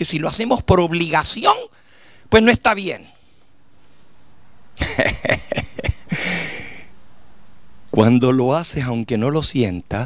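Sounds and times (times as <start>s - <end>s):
faint background hiss: 0.0s - 10.0s
man laughing into microphone: 4.8s - 6.3s.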